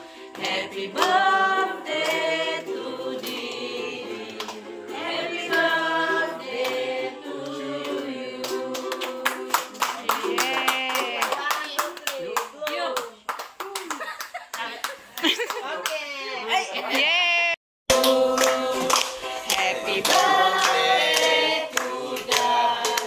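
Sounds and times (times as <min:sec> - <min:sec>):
group singing birthday song: 0:00.0 - 0:11.4, 0:17.9 - 0:23.0
fast hand clapping: 0:08.4 - 0:16.0, 0:17.9 - 0:23.0.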